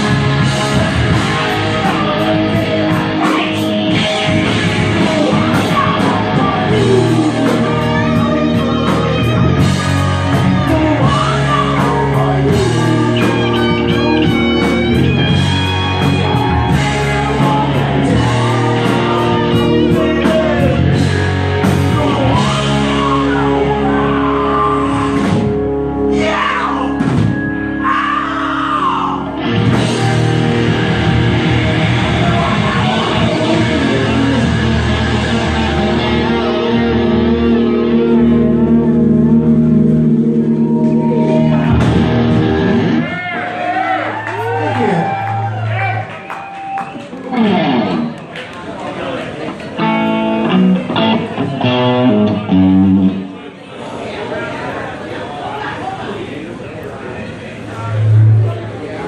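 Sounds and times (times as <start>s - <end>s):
drums: 0.0s - 48.6s, 49.5s - 53.3s
bass guitar: 0.0s - 48.7s, 49.4s - 53.6s, 57.6s - 59.0s
electric guitars: 0.0s - 53.5s.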